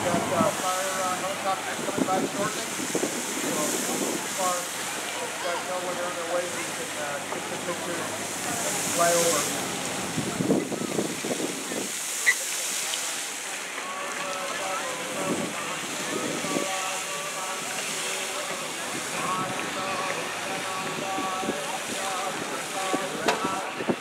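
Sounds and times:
people talking indistinctly: 0.0s - 24.0s
spraying water jets: 0.0s - 24.0s
wind hiss: 0.0s - 24.0s.

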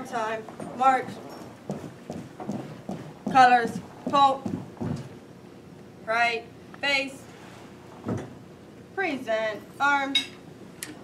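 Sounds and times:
marching footsteps in step: 0.4s - 5.2s.

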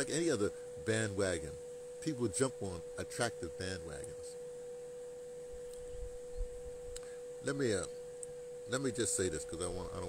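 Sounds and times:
steady mid-pitched tone: 0.0s - 10.0s.

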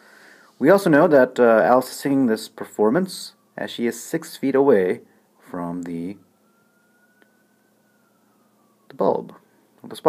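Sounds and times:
faint gliding high tone: 0.5s - 10.0s.

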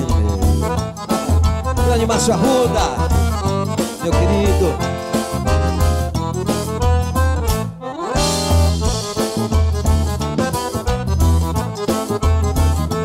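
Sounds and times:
accordion melody: 0.0s - 13.0s
bass drum beat: 0.0s - 13.0s.

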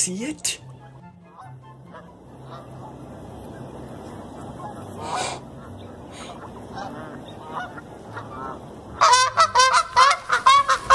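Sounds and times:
geese honking: 0.6s - 10.9s.

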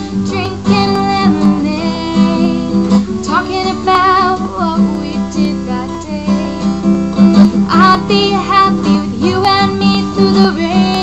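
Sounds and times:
strummed acoustic guitar: 0.0s - 11.0s
woman singing: 0.0s - 11.0s.

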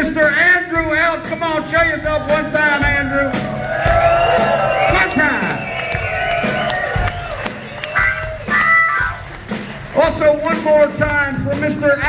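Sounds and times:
crowd cheering: 1.3s - 11.1s
crowd clapping: 2.8s - 11.4s.

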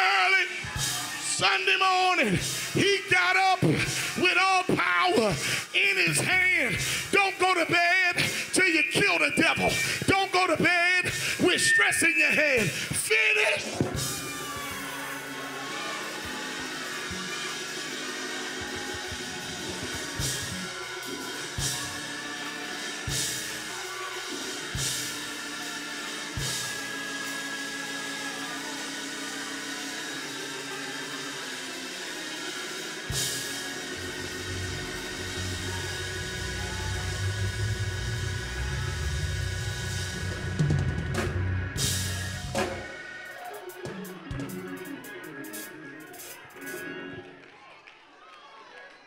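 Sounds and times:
church band music: 0.0s - 47.4s
organ chords: 0.0s - 47.5s.

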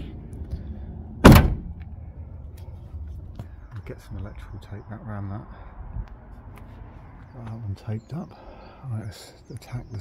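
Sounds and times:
van door shutting thunk: 1.2s - 1.8s.

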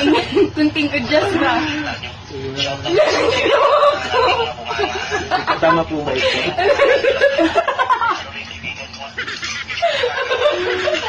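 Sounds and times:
man and woman laughing: 0.0s - 0.6s, 2.9s - 8.4s, 9.2s - 11.0s.

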